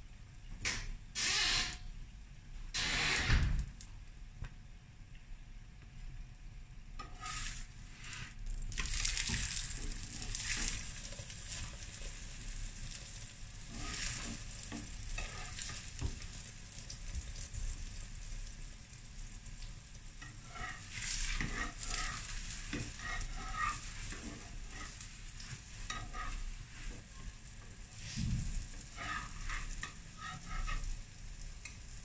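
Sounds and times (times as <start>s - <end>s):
metal utensils scraping a pan: 7.0s - 7.6s, 13.6s - 16.3s, 20.2s - 27.1s, 28.0s - 31.0s
bread sizzling in oil: 7.0s - 32.0s.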